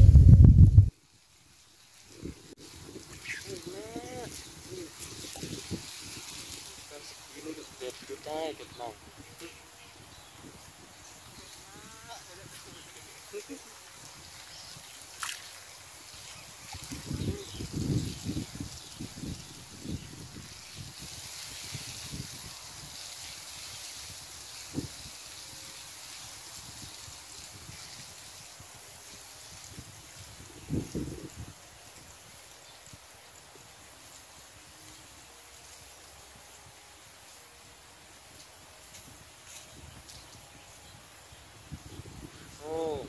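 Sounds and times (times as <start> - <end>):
faint outdoor hiss: 0.0 - 43.0
water sloshing around person wading: 14.4 - 17.2.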